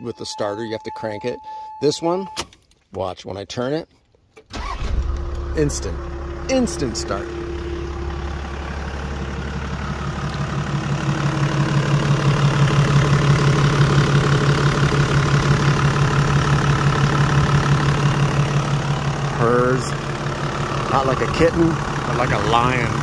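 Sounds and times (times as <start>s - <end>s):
diesel engine idling: 4.5s - 23.0s.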